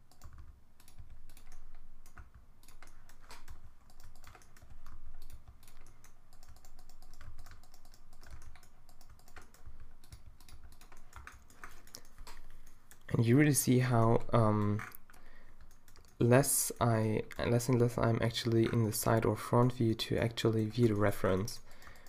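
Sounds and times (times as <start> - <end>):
computer keyboard keystrokes: 0.0 - 13.1, 14.5 - 16.3.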